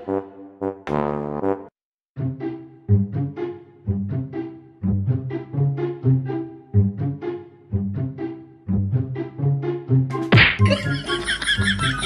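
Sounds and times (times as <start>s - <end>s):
light background music: 2.2s - 12.0s
slap-like hit: 10.2s - 10.8s.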